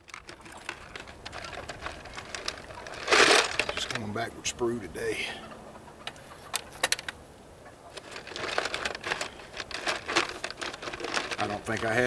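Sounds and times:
lead pieces clinking together: 0.0s - 4.0s.

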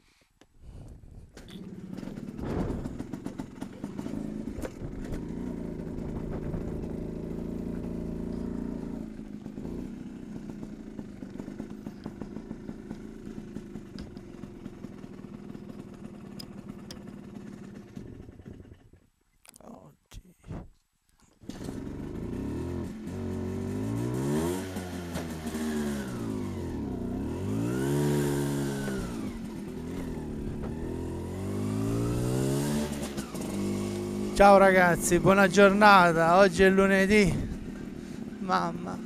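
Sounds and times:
motorbike engine revving and idling: 1.2s - 19.1s, 21.4s - 39.0s.

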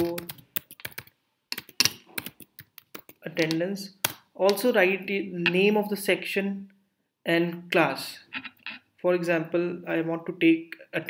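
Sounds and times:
typing on computer keyboard: 0.0s - 3.6s.

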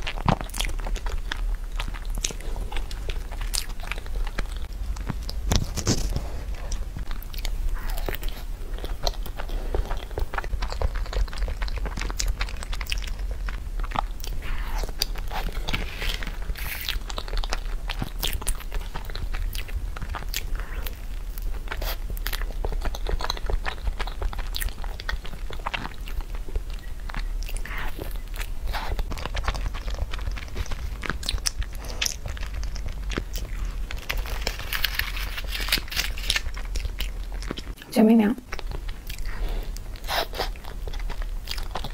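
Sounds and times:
person chewing: 0.0s - 41.9s.

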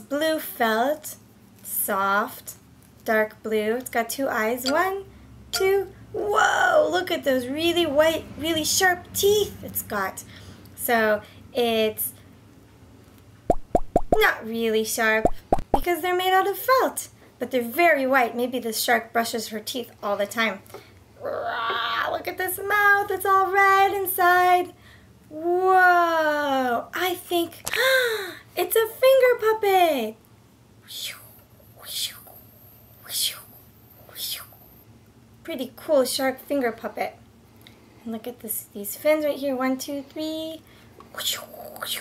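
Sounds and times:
woman whispering: 30.8s - 34.7s, 41.1s - 42.0s.

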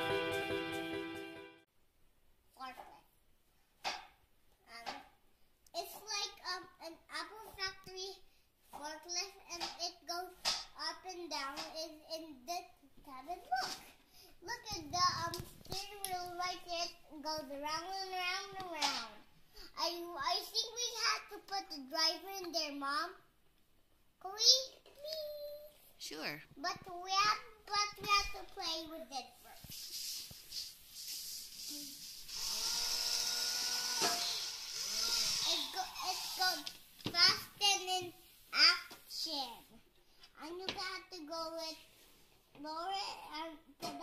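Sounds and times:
toy electric motor whine: 31.6s - 36.5s
boy making wavering sounds: 34.8s - 36.7s.

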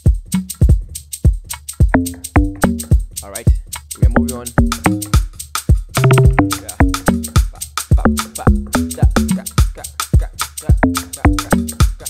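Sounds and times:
four-on-the-floor kick drum: 0.0s - 12.0s
log drum bass notes: 0.0s - 12.0s
shaker ticks: 0.0s - 12.0s.

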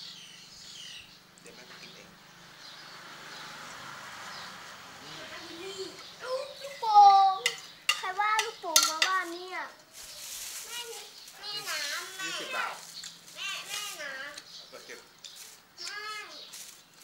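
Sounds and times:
plastic bag crinkling: 9.2s - 14.4s.

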